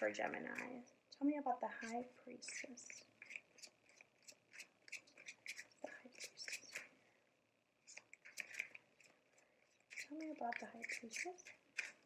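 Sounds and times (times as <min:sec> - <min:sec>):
cards being shuffled: 0:07.9 - 0:09.1.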